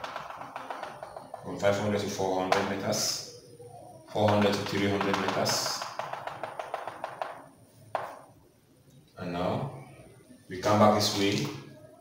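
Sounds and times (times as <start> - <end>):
chalk tap on board: 0.0 - 1.5, 4.4 - 7.4, 8.0 - 8.2
chalk ticking on chalkboard: 0.0 - 2.7, 4.2 - 8.2.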